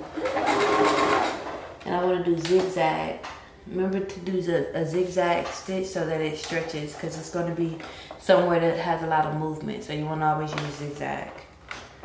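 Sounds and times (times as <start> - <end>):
sewing machine stitching: 0.0 - 1.6.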